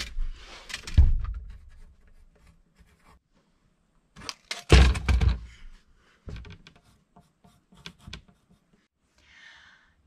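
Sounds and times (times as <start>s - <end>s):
pencil scratching on wood: 1.5s - 3.3s, 6.7s - 8.9s.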